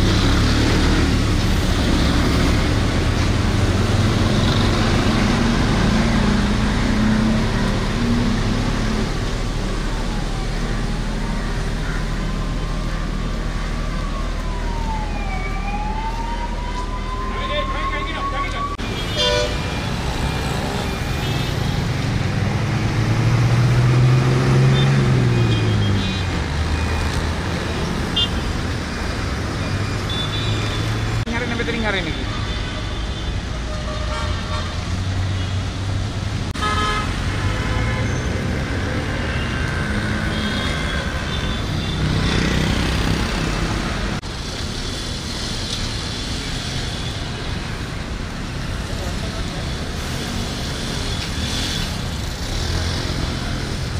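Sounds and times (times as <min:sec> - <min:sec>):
vehicle engines passing: 0:00.0 - 0:53.9.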